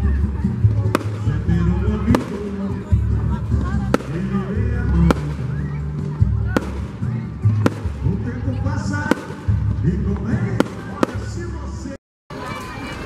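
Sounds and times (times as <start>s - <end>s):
music with heavy bass: 0.0s - 11.6s
voices: 0.0s - 13.0s
fireworks bangs: 0.5s - 11.9s.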